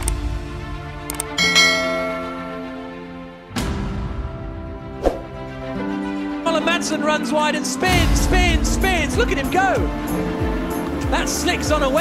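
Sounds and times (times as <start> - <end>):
notification bell chime: 1.4 - 2.8.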